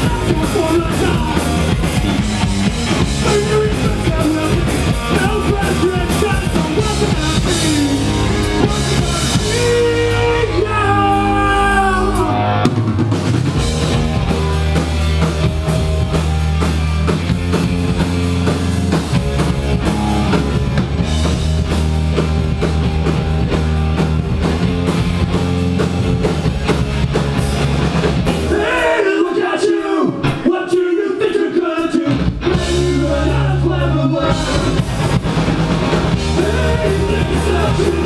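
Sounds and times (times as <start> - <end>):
electric guitar: 0.0 - 29.0, 32.1 - 38.0
bass guitar: 0.0 - 29.2, 31.6 - 38.0
drum kit: 0.0 - 38.0.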